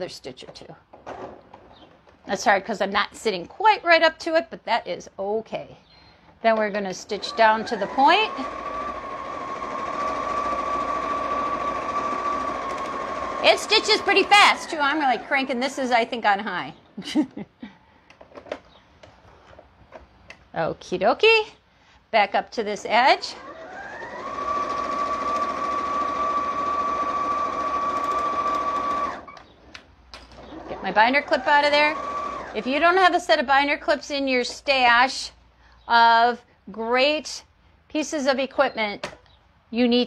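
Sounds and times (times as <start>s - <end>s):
sewing machine stitching: 6.7s - 16.1s, 22.8s - 29.4s, 30.4s - 32.8s.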